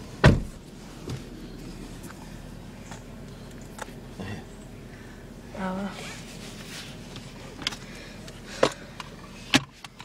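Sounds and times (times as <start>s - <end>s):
steady low hum: 0.0s - 10.0s
sharp clicks in car cabin: 7.1s - 10.0s.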